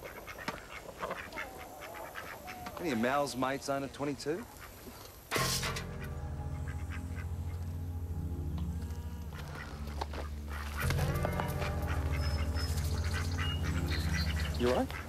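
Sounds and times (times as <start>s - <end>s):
ducks quacking: 0.0s - 8.0s, 8.8s - 15.0s
low musical drone: 5.3s - 15.0s.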